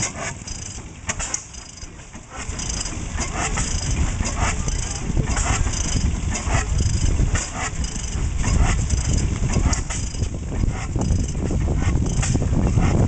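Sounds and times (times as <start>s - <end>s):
stationary gas engine running slowly: 0.0s - 13.0s.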